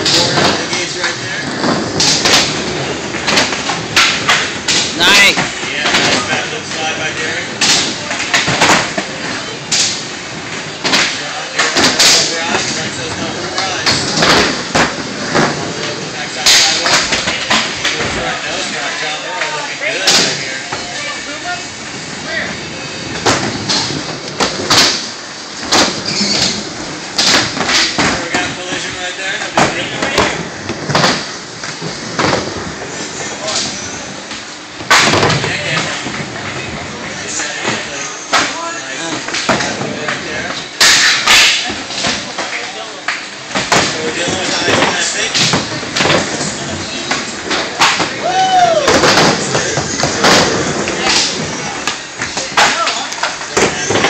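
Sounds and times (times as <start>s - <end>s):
skateboard impacts: 0.0s - 22.4s, 23.0s - 33.8s, 34.8s - 54.0s
crowd chatter: 0.0s - 54.0s
skateboards rolling on wooden ramps: 0.0s - 54.0s.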